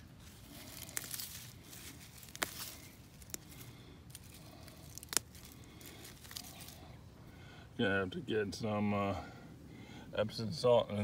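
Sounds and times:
dry leaf litter rustling: 0:00.0 - 0:07.0
roots tearing from soil: 0:00.0 - 0:07.0.

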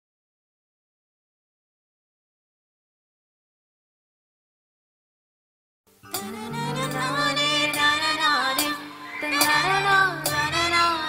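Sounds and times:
live band playing film song: 0:06.1 - 0:11.0.

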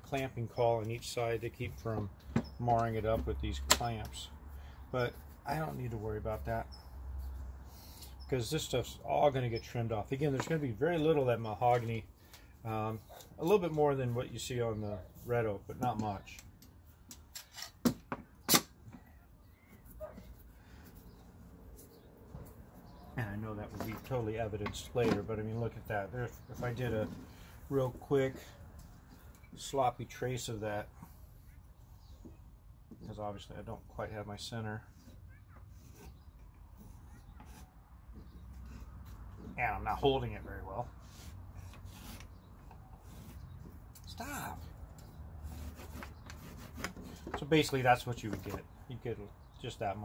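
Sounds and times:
pencil scratching on wood: 0:45.4 - 0:47.3.

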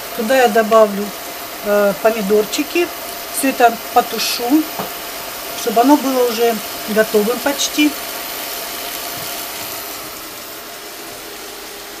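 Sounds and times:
vegetables sizzling in a pan: 0:00.0 - 0:12.0.

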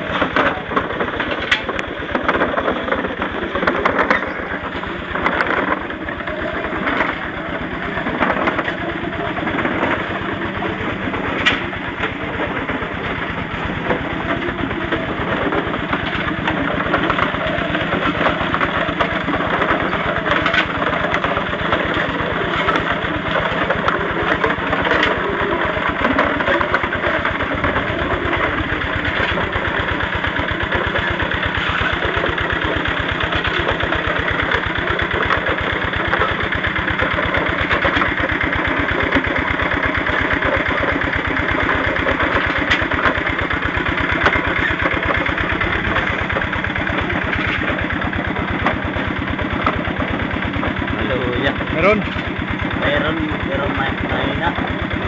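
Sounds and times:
drum mill tumbling rock: 0:00.0 - 0:55.0
small engine running: 0:00.0 - 0:55.0.

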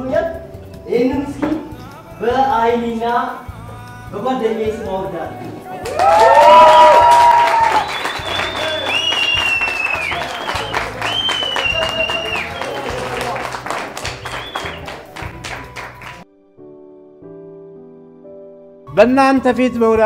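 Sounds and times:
music: 0:00.0 - 0:20.0
high cheering calls: 0:05.8 - 0:14.9
small group clapping: 0:05.8 - 0:16.2.

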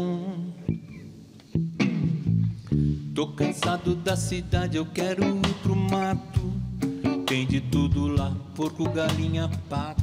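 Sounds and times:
bass guitar: 0:00.0 - 0:10.0
electric guitar chords: 0:00.0 - 0:10.0.

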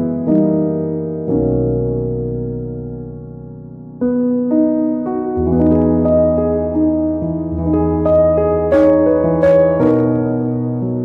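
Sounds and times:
slow calm piano chords: 0:00.0 - 0:11.0.

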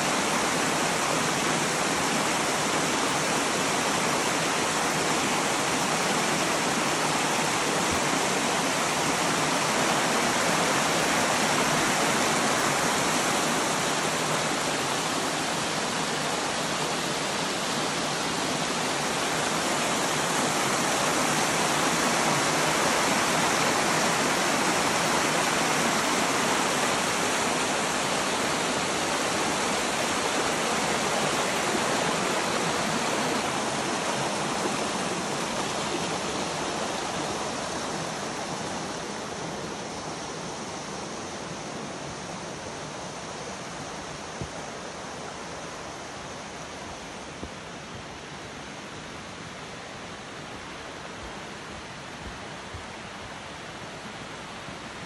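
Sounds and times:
creek water rushing over rocks: 0:00.0 - 0:55.0.

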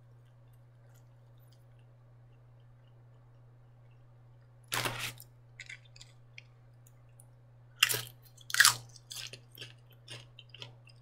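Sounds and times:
crunchy food being chewed: 0:00.0 - 0:11.0.

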